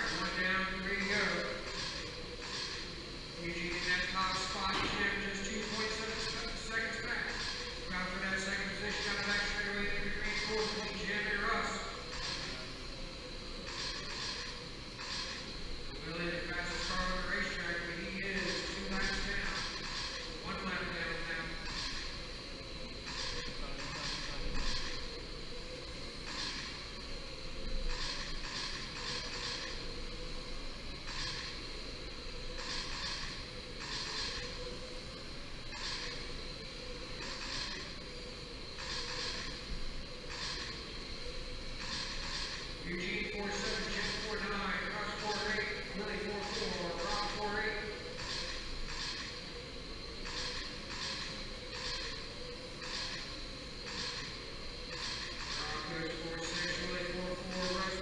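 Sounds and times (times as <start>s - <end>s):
thin steady high tone: 0.0s - 58.0s.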